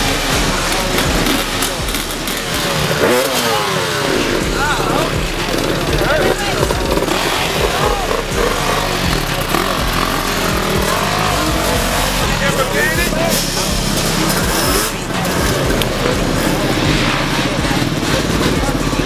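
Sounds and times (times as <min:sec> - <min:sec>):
crowd voices: 0:00.0 - 0:19.0
dirt bike engines revving: 0:00.0 - 0:19.0.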